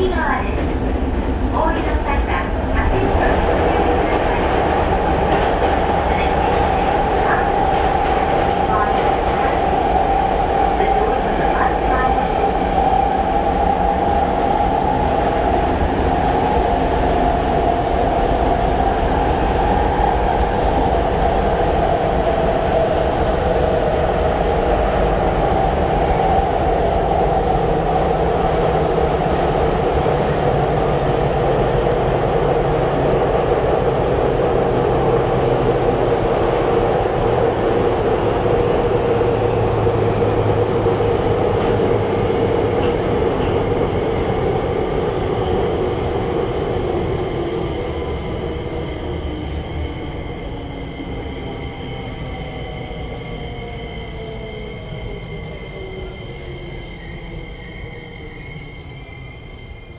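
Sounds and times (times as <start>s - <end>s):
wheels rumbling on rail: 0.0s - 58.3s.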